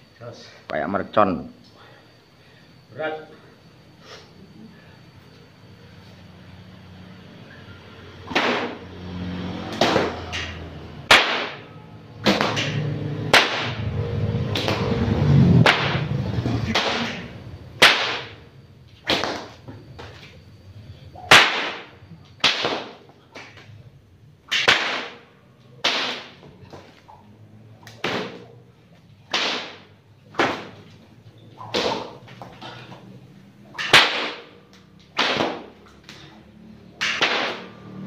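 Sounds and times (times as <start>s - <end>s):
whip cracking: 8.3s - 8.8s, 9.7s - 13.9s, 14.5s - 14.9s, 15.6s - 18.4s, 19.0s - 19.6s, 21.2s - 23.7s, 24.5s - 25.2s, 25.8s - 26.8s, 27.8s - 28.5s, 29.3s - 30.8s, 31.6s - 32.2s, 33.7s - 36.2s, 37.0s - 38.0s.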